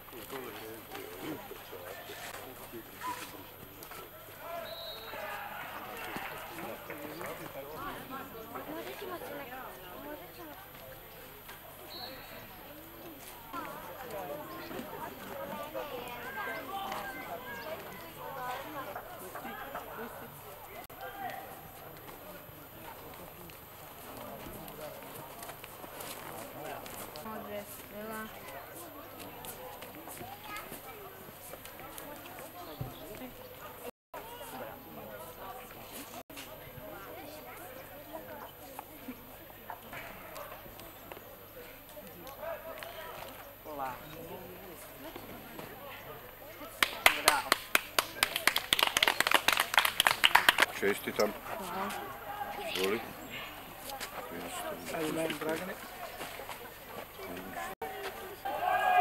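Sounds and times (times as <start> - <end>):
people talking: 0.0 - 59.0
people clapping: 5.1 - 7.8, 46.7 - 51.3.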